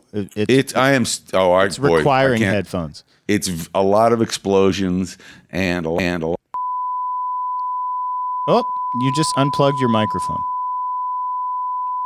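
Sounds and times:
steady sine tone: 0:06.6 - 0:12.0.

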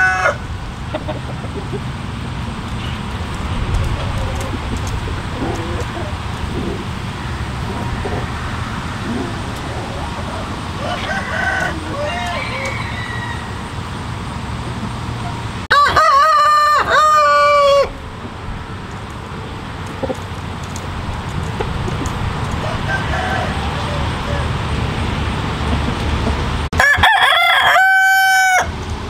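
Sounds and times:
rooster crowing: 0:00.0 - 0:00.5, 0:07.2 - 0:13.9, 0:15.7 - 0:18.0, 0:22.6 - 0:24.7, 0:26.8 - 0:28.8
chicken calls: 0:00.0 - 0:28.8.

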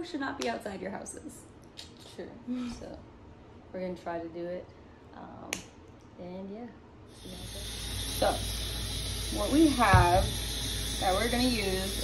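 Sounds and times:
steady hissing noise: 0:07.0 - 0:12.0.

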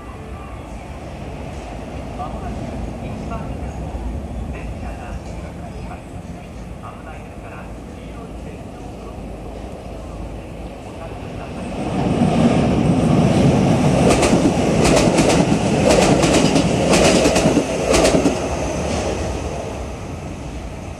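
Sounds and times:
train passing: 0:00.0 - 0:20.9.

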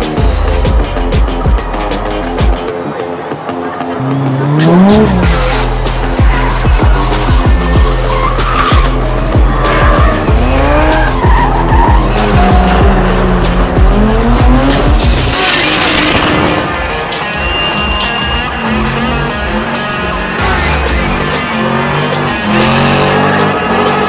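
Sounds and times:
background music: 0:00.0 - 0:24.0
car engines revving hard: 0:03.1 - 0:24.0
tyres squealing: 0:04.0 - 0:24.0.

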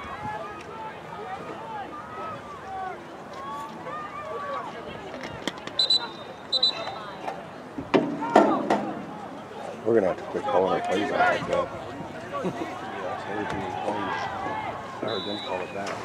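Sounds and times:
distant voices of players: 0:00.0 - 0:16.0
referee's whistle blasts: 0:05.8 - 0:07.2, 0:15.0 - 0:15.9.

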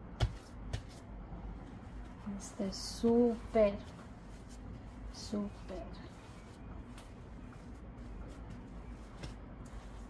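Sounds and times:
hands patting bread dough: 0:00.0 - 0:01.2, 0:05.6 - 0:10.0.

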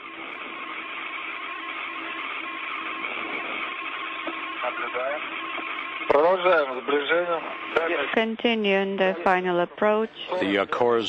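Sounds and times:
faint constant hum: 0:00.0 - 0:11.0
radio channel hiss: 0:00.0 - 0:11.0
voice over radio: 0:06.1 - 0:11.0.

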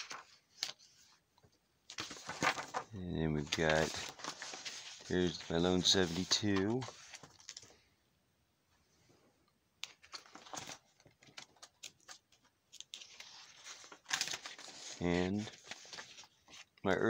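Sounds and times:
binder pages turning: 0:00.0 - 0:07.8, 0:09.8 - 0:17.0.

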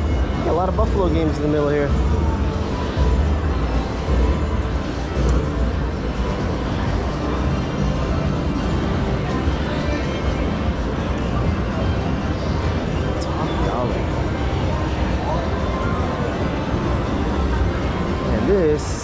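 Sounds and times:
background music with deep bass: 0:00.0 - 0:19.0
faint voices: 0:00.0 - 0:19.0.

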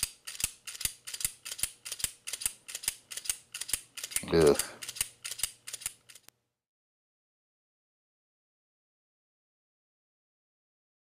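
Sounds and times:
rapid mechanical clicking: 0:00.0 - 0:06.3.

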